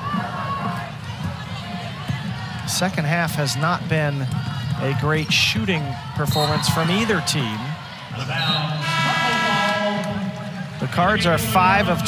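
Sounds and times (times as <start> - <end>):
arena horn long tone: 8.4 - 10.5.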